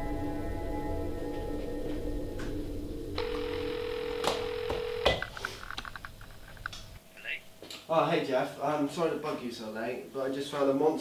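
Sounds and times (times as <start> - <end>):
background music: 0.0 - 3.2
telephone tone: 3.2 - 5.3.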